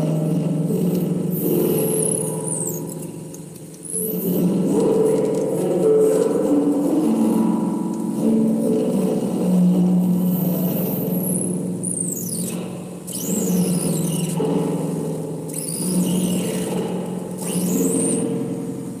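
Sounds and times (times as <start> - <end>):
low electronic drone: 0.0 - 19.0.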